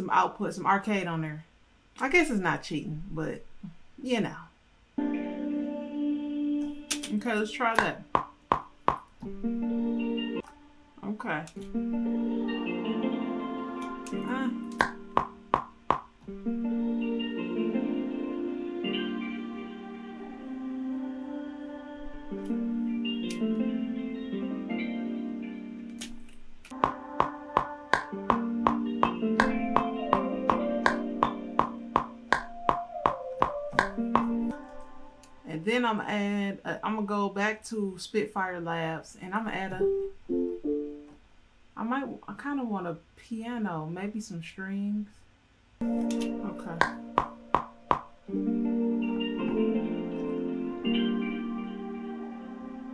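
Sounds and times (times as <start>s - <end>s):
sharp click on beat: 26.7s - 34.4s
plucked notes: 26.7s - 34.8s
guitar chord with effects: 26.8s - 35.4s, 48.3s - 52.9s.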